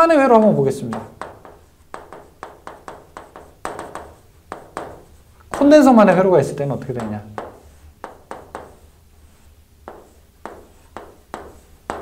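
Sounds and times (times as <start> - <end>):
faint chalk scraping: 0.3 - 12.0
chalk clicking on chalkboard: 0.4 - 6.0, 6.8 - 12.0.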